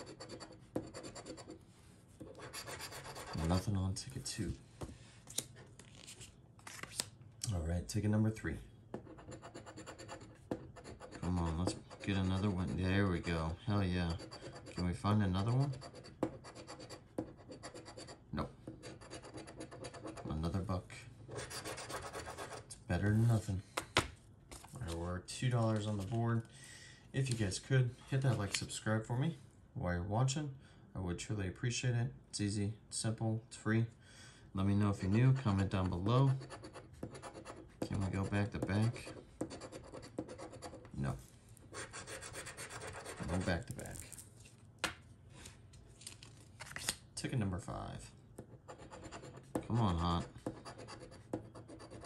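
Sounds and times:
coin scratching lottery ticket: 0.0 - 1.6, 2.3 - 3.7, 9.1 - 13.4, 18.8 - 20.3, 21.3 - 22.6, 35.0 - 40.8, 41.7 - 43.6, 48.7 - 52.0
coin scraping scratch-off ticket: 41.8 - 44.0.

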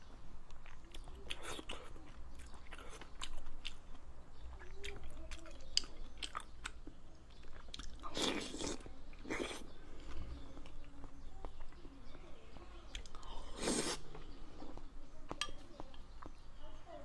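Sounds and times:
chewing soft food: 0.2 - 16.6
lip and tongue clicks: 0.6 - 10.8.

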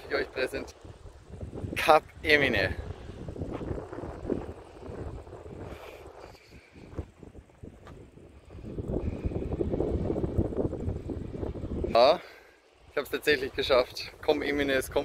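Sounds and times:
wind buffeting microphone: 0.0 - 12.2, 12.8 - 15.0.

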